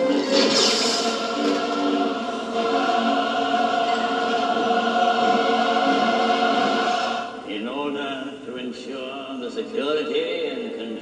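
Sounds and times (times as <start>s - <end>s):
choir holding chords: 0.0s - 7.5s
man speaking: 7.4s - 11.0s.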